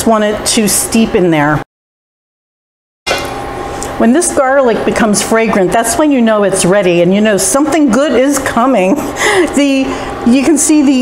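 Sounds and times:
faint hum: 3.2s - 11.0s.

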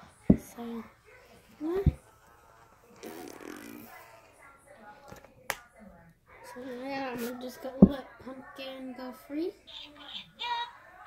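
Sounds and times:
faint voice murmuring: 0.0s - 11.0s.

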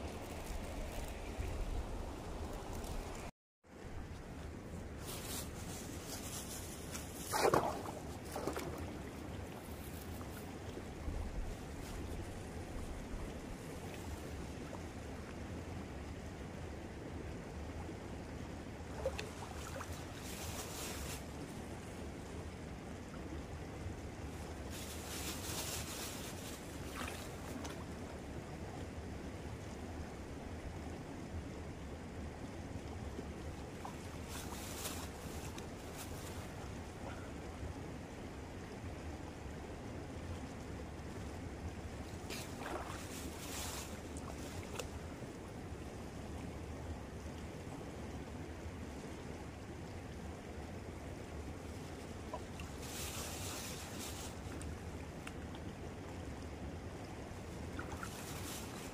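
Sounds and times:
wind rumble on microphone: 0.0s - 54.6s
shallow river running: 0.0s - 58.9s
splashing from wading: 42.2s - 44.8s.

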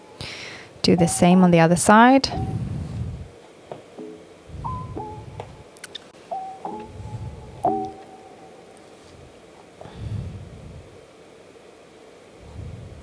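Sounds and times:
soft music of single notes: 4.0s - 5.6s, 6.3s - 8.9s.

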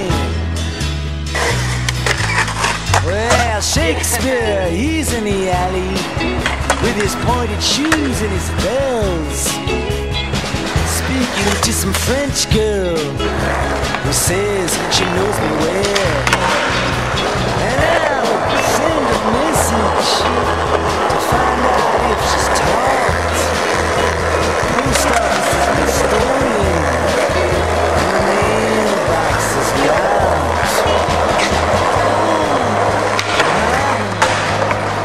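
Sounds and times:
rock song with bass line: 0.0s - 35.0s
skateboard wheels rolling on concrete: 0.0s - 35.0s
skateboard clicks and knocks: 14.8s - 35.0s.

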